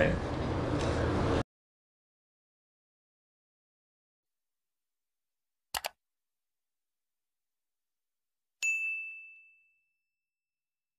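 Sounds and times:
bright high bell ding: 8.6s - 10.1s.

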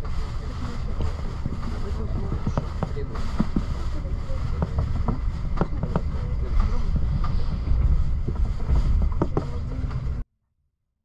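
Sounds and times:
train wheels rumbling: 0.0s - 10.2s.

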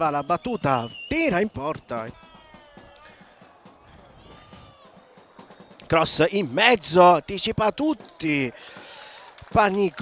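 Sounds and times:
distant drawn-out shout: 2.0s - 5.6s.

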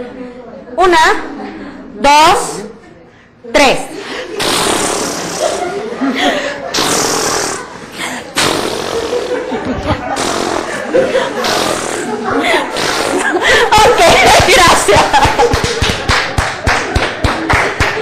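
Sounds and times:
people blowing raspberries: 4.0s - 14.0s
laughter: 5.2s - 6.8s, 8.9s - 15.8s.

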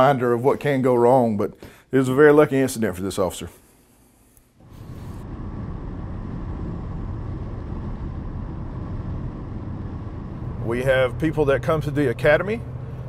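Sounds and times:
car road and engine rumble: 4.6s - 13.0s.

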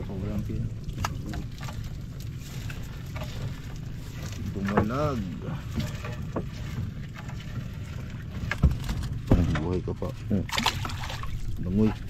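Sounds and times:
low rumble of water: 0.0s - 12.0s
net being hauled into boat: 0.0s - 12.0s
wind: 0.0s - 12.0s
sharp knocks against boat: 8.5s - 9.8s.

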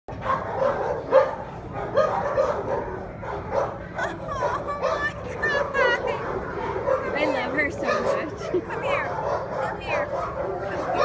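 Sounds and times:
small dog barking: 0.2s - 3.8s, 7.8s - 8.3s, 9.2s - 11.0s.

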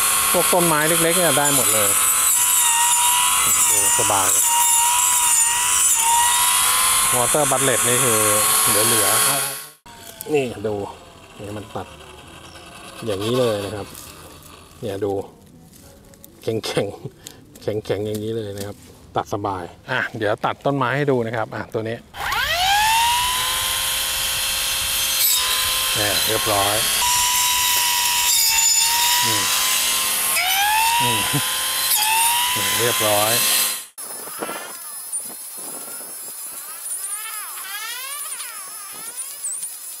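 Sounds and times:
grass trimmer cutting grass: 0.0s - 15.8s, 22.1s - 40.0s.

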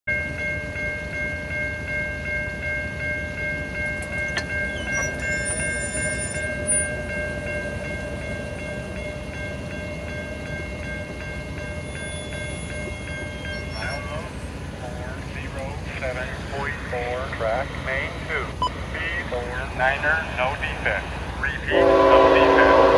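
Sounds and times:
railroad crossing bell ringing: 0.1s - 22.9s.

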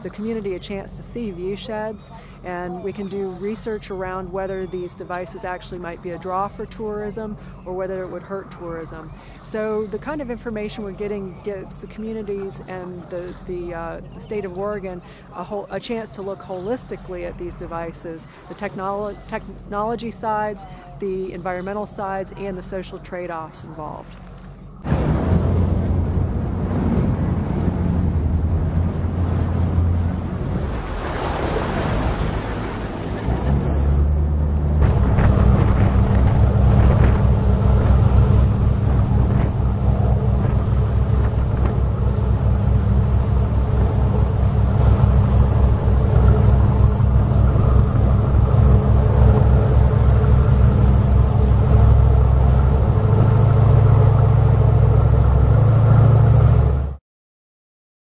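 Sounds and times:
motorboat engine running: 0.0s - 57.0s
water rushing along hull: 0.0s - 57.0s.

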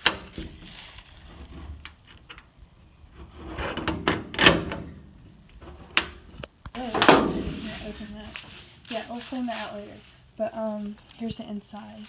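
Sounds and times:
metal door clanking: 3.6s - 6.2s, 6.8s - 7.7s
metal door latch rattling: 3.8s - 5.1s.

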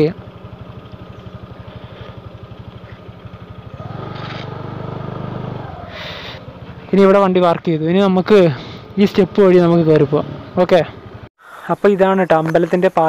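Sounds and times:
scooter engine puttering: 0.0s - 11.2s.

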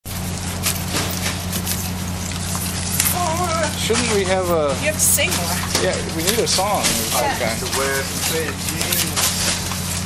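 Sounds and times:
steady low hum: 0.1s - 10.0s.

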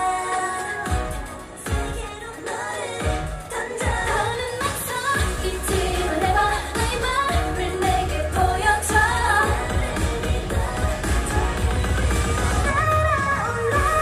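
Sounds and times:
pop song with female vocals: 0.0s - 14.0s
bass line: 5.2s - 14.0s.

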